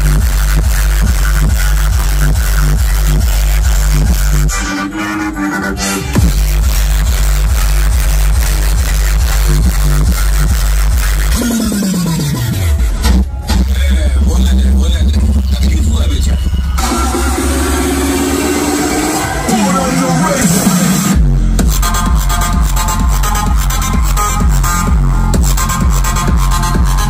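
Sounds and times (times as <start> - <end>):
electronic dance music with heavy bass: 0.0 - 27.0
falling bass sweep: 5.8 - 27.0.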